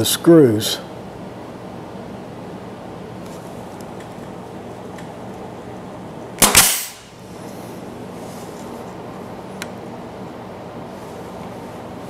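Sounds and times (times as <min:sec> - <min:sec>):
brad nailer shot: 0:06.4 - 0:07.2.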